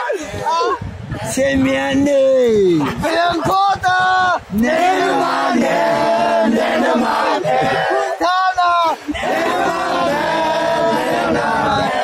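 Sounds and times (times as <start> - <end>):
group chanting and shouting: 2.8 - 12.0.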